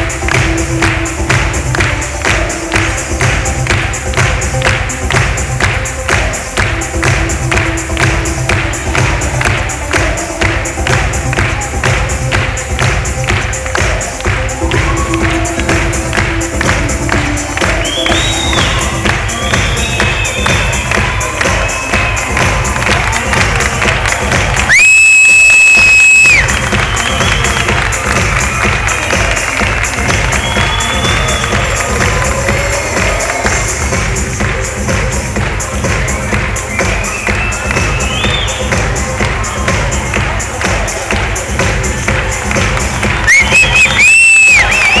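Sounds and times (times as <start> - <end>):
live stage-show music: 0.0 - 45.0
audience cheering and whooping: 14.6 - 15.7, 17.8 - 29.4, 43.2 - 45.0.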